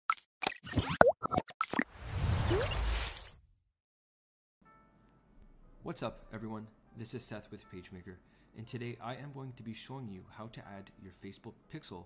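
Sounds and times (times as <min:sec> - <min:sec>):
cartoon pops and plops: 0:00.4 - 0:01.9.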